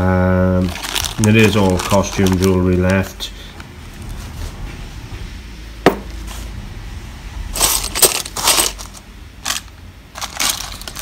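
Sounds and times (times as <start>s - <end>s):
bead necklaces and chains clinking: 7.5s - 11.0s.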